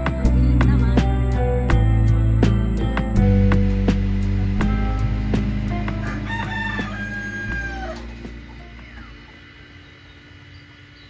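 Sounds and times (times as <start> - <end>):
background music with steady beat: 0.0 - 9.7
rooster crowing: 6.0 - 8.2.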